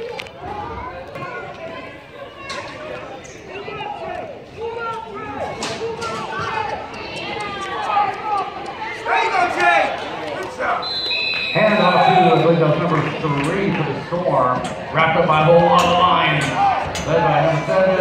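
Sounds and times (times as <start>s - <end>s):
players and spectators shouting: 0.0s - 18.0s
referee whistle: 10.8s - 12.6s.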